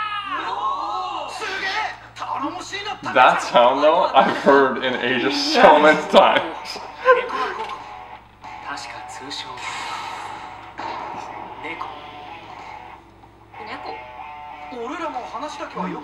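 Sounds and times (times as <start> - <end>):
dialogue: 0.0 - 16.0
background music: 3.0 - 16.0.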